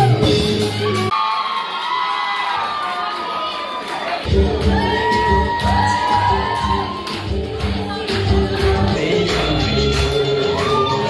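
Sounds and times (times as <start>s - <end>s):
live rock band playing: 0.0s - 1.1s
audience cheering and whooping: 0.8s - 7.8s, 10.4s - 11.0s.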